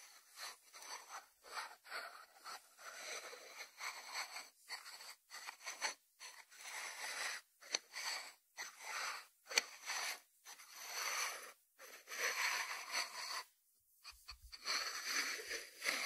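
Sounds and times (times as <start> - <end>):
ceramic dish scraping on wood: 14.1 - 16.0.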